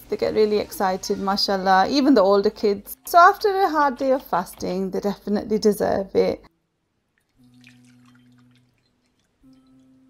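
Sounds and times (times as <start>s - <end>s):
liquid trickling into a glass bowl: 7.2s - 10.0s.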